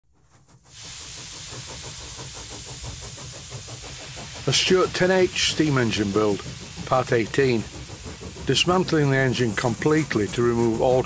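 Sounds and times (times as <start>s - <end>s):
steam hissing: 0.2s - 11.0s
fast rhythmic beat: 0.6s - 11.0s.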